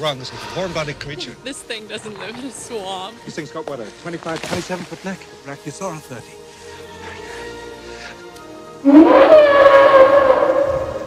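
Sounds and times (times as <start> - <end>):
dinosaur call: 8.8 - 11.0.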